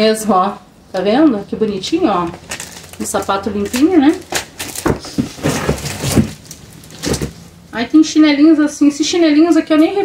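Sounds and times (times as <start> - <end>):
rustling of shoes in box: 4.2 - 7.6.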